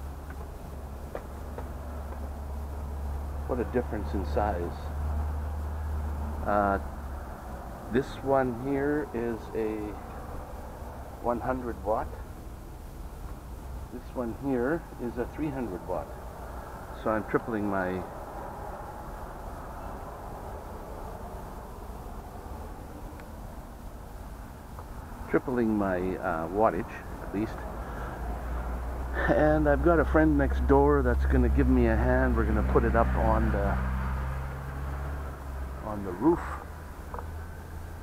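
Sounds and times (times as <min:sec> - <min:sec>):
faint background noise: 0:00.0 - 0:38.0
low mechanical hum: 0:00.0 - 0:38.0
low outdoor rumble: 0:00.0 - 0:38.0.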